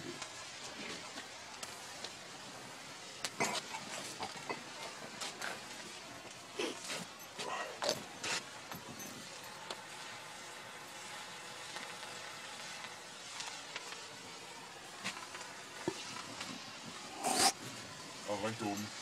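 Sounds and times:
faint crackles: 0:00.0 - 0:19.0
flare burning with steady hiss: 0:00.0 - 0:19.0.

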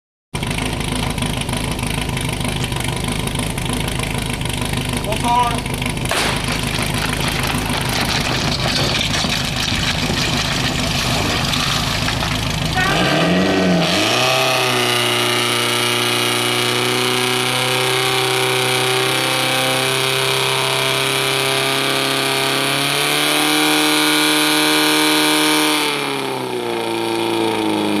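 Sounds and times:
fire pump engine running: 0:00.4 - 0:28.0.

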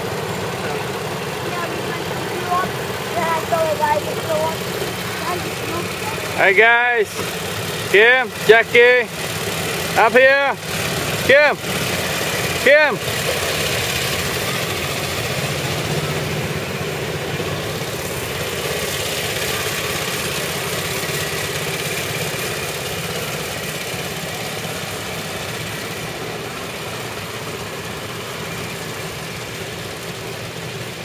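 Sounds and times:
small car engine running: 0:00.0 - 0:31.0.

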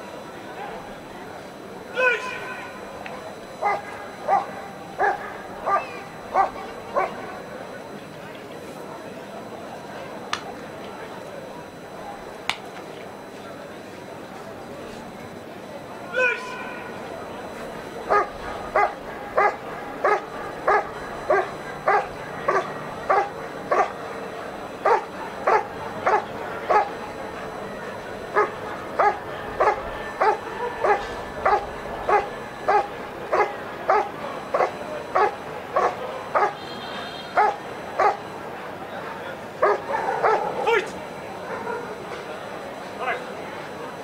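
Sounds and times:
dog barking: 0:03.6 - 0:07.2, 0:18.1 - 0:24.0, 0:24.8 - 0:27.0, 0:28.3 - 0:36.7, 0:37.3 - 0:38.3, 0:39.6 - 0:40.8, 0:41.4 - 0:42.0.

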